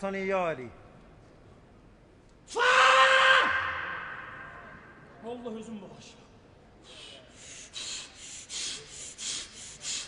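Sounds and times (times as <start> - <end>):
loud high shout echoing: 2.5 - 5.1.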